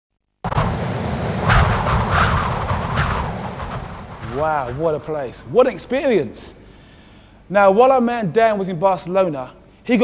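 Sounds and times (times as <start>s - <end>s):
wind blowing over microphone: 0.5s - 6.0s.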